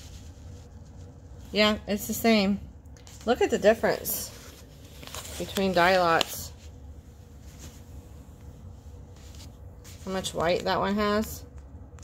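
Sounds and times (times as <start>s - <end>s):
yarn and paper labels rustling: 0.0s - 11.5s
low room hum: 0.0s - 12.0s.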